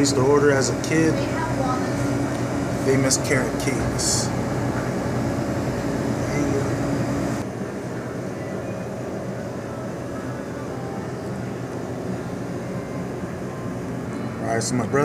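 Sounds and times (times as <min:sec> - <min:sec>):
low mechanical hum: 0:00.0 - 0:15.0.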